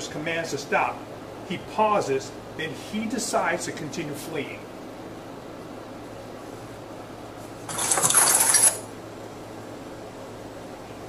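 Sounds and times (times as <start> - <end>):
low room hum: 0.0 - 11.0
clattering and rustling: 7.6 - 8.9.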